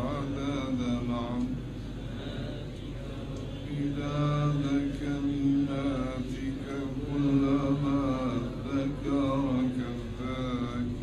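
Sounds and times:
men chanting a prayer: 0.0s - 11.0s.

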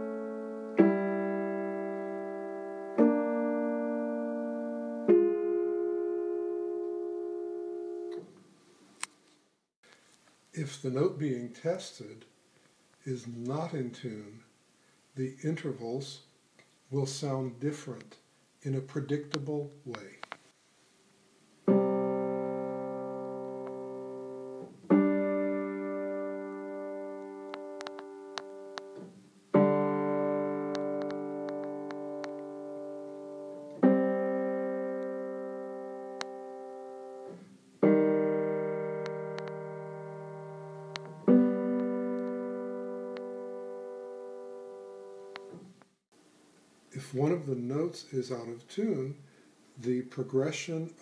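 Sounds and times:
piano intervals ringing: 0.0s - 8.4s, 21.6s - 46.0s.

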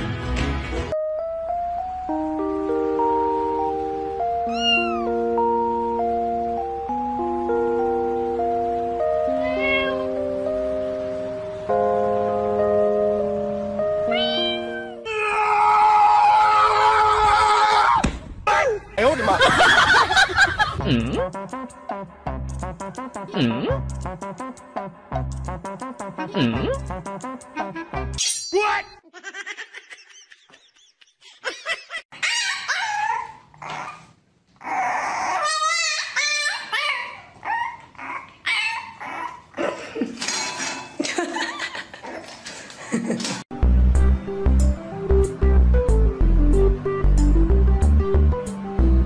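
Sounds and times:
music: 0.0s - 15.1s, 20.6s - 28.2s, 43.5s - 49.0s
short high animal call: 4.5s - 5.1s
puppy yelping and howling: 4.5s - 5.2s, 32.1s - 39.6s.

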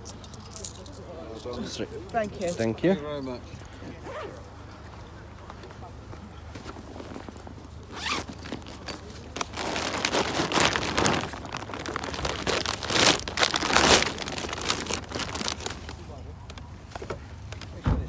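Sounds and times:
backpack zip pulled: 4.1s - 4.4s, 7.9s - 8.9s
plastic bag crinkling: 8.0s - 16.6s.

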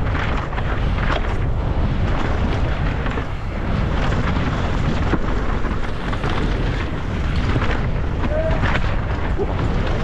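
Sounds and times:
bike knocking over rocks: 0.0s - 10.0s
tyres rumbling over dirt: 0.0s - 10.0s
wind buffeting microphone: 0.0s - 10.0s.

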